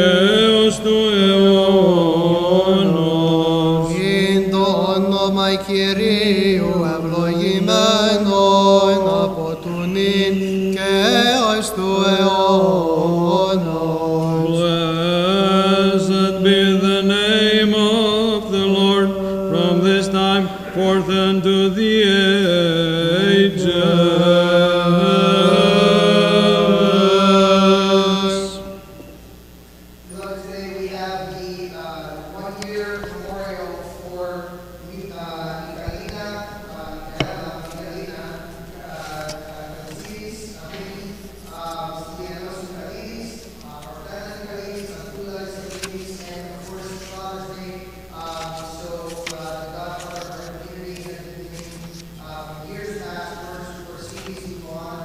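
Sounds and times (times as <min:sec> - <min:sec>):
held low vocal drone: 0:00.0 - 0:29.2
slow chanted melody: 0:00.0 - 0:29.4.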